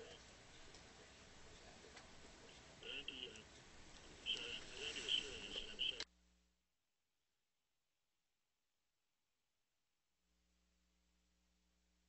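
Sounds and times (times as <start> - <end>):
faint background voices: 0.0 - 6.1.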